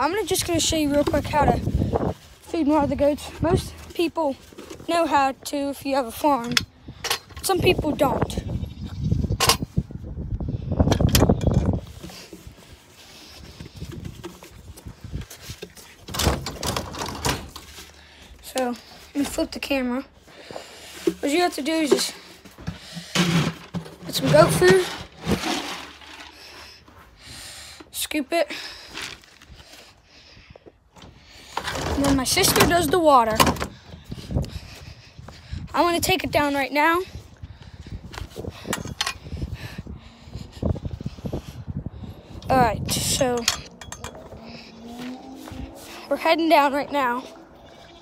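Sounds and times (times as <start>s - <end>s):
wind rumble on microphone: 0.0s - 4.0s, 6.4s - 17.6s, 29.5s - 46.1s.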